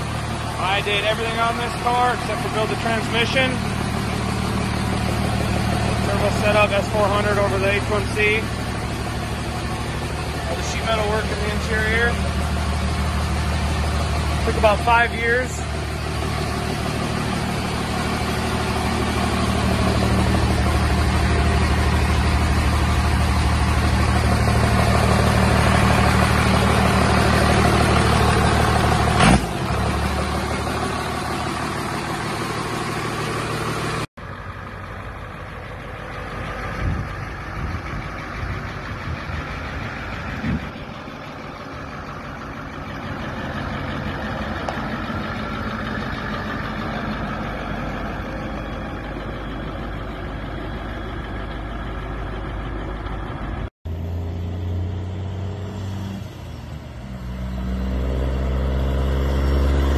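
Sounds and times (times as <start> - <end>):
diesel engine idling: 0.0 - 59.9
engine running quietly with knocks: 15.7 - 53.7.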